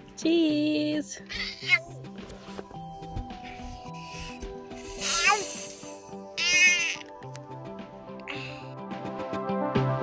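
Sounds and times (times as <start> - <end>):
small child squealing: 5.0 - 5.6, 6.4 - 7.1.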